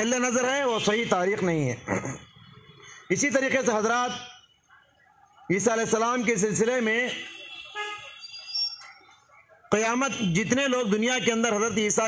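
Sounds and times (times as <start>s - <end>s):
street traffic: 0.0s - 12.0s
vehicle horn toot: 0.7s - 1.1s, 7.1s - 8.4s.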